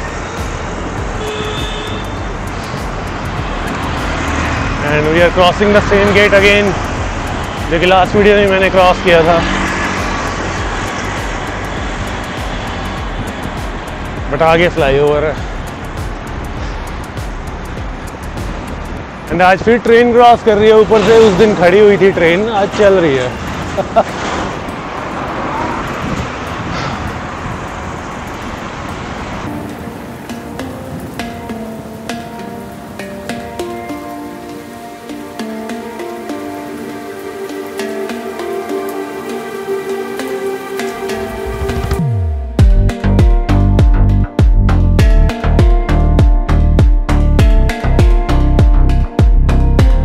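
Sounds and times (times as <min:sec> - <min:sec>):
wind rushing: 0:00.0 - 0:33.0, 0:39.0 - 0:50.0
road traffic: 0:00.0 - 0:50.0
plucked guitar-like music: 0:29.5 - 0:50.0.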